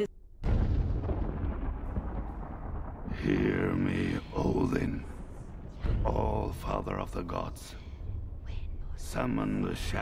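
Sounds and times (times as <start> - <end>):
deep steady rumble: 0.6 - 10.0.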